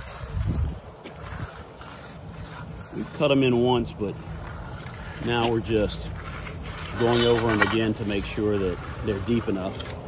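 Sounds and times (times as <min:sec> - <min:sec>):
steel groover scraping wet concrete: 0:00.0 - 0:10.0.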